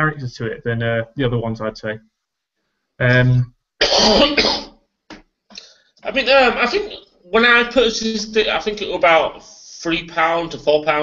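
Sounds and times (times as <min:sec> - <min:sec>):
man coughing: 0:03.8 - 0:04.8.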